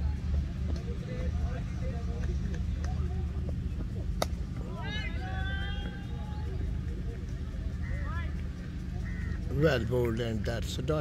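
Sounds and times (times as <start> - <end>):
cricket ball impact crack: 4.2 - 4.4.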